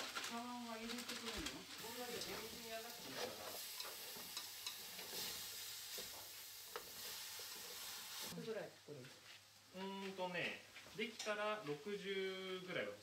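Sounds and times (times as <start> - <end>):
vegetables and meat sizzling in pot: 0.0 - 13.0
utensils scraping and clicking on pot: 1.7 - 8.0.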